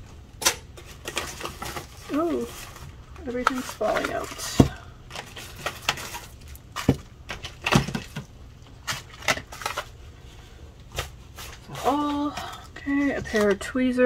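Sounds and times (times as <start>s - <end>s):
bubble wrap crinkling: 0.7s - 13.7s.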